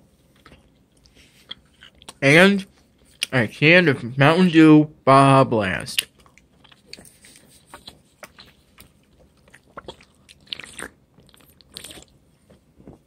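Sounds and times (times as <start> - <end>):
person chewing and biting: 0.2 - 2.2, 6.0 - 13.0.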